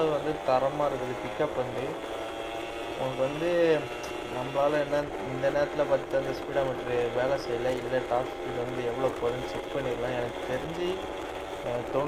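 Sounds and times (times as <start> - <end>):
man talking: 0.0 - 2.0, 3.0 - 11.0, 11.6 - 12.0
motorcycle engine at speed: 0.0 - 12.0.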